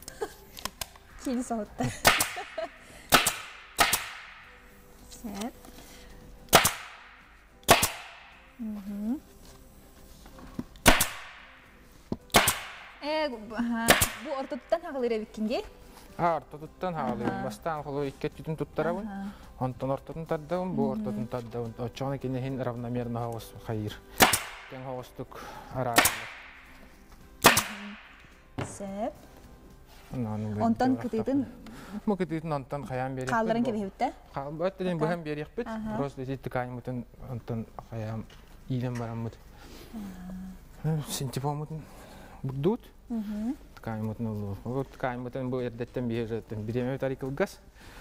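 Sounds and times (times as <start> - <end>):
pneumatic staple gun firing: 3.1 - 4.2, 6.5 - 6.9, 7.7 - 8.1, 10.8 - 11.3.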